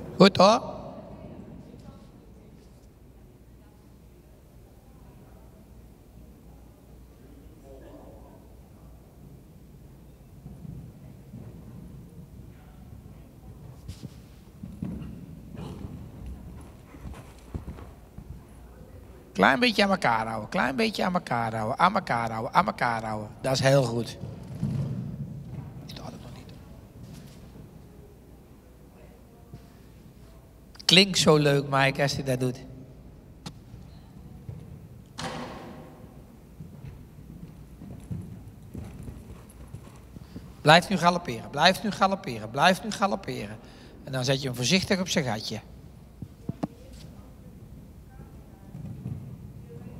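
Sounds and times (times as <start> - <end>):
horse hoofbeats on sand: 10.4 - 18.4, 36.5 - 40.6.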